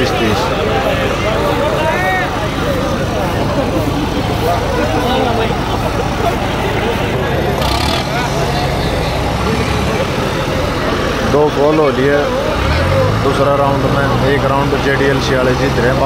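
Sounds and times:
crowd chatter: 0.0s - 16.0s
tractor diesel engine running: 0.0s - 16.0s.

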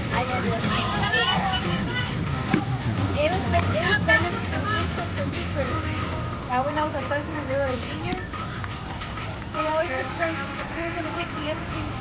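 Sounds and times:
people talking overlapping: 0.0s - 12.0s
steady low rumble: 0.0s - 12.0s.

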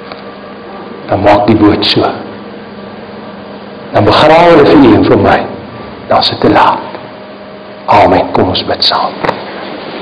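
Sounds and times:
steady hum and hiss: 0.0s - 10.0s
man speaking: 1.1s - 2.3s, 3.9s - 7.0s, 7.9s - 9.2s.

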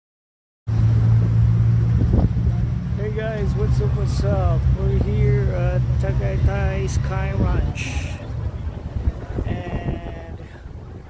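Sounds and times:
low rumble with hum: 0.7s - 11.0s.

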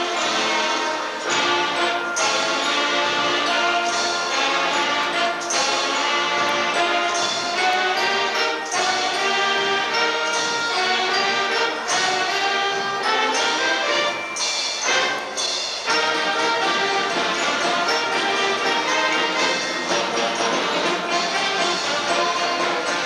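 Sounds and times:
string band playing lively tune: 0.0s - 23.0s.

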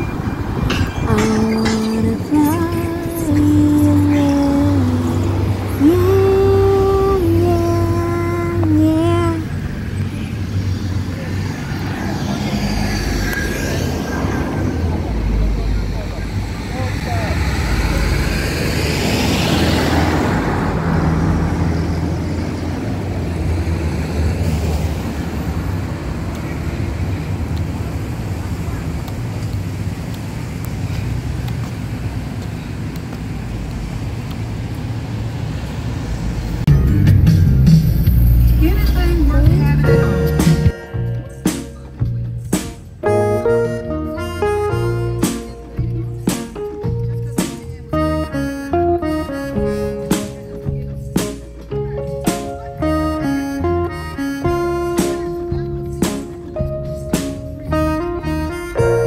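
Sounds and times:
wind noise: 0.0s - 5.8s
car driving past: 0.0s - 29.1s
traffic rumble: 0.0s - 59.0s
person singing held notes: 1.0s - 9.5s.

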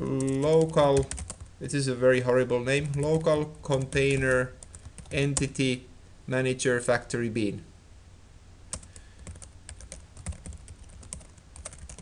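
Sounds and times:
keyboard keys clicking: 0.2s - 1.4s, 8.7s - 12.0s.

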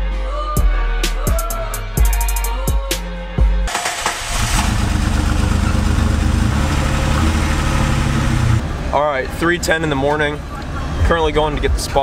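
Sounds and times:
music with heavy bass beat: 0.6s - 3.7s
car engine starting and running: 3.7s - 12.0s.

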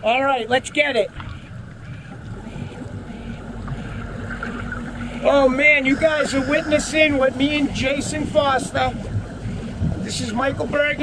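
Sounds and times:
low rumbling background noise: 0.0s - 11.0s
motorboat engine idling: 0.0s - 11.0s.

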